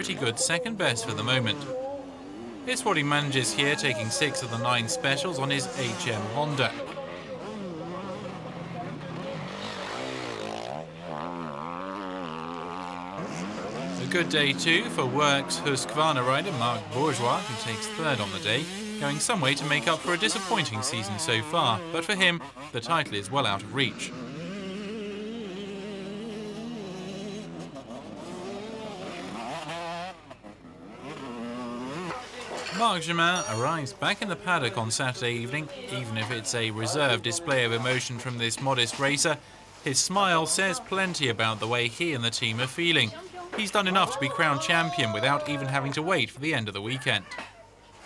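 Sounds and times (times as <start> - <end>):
motorcycle engine revving: 0.0 - 34.7.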